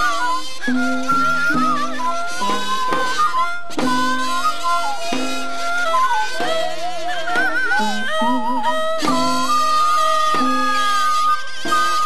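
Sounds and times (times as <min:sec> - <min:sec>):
sharp percussive strokes: 0:00.0 - 0:12.0
melodic instruments with slow vibrato: 0:00.4 - 0:05.6, 0:07.4 - 0:10.9.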